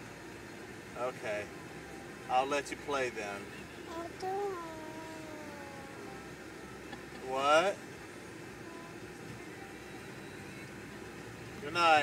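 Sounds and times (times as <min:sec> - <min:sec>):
car interior hum: 0:00.0 - 0:12.0.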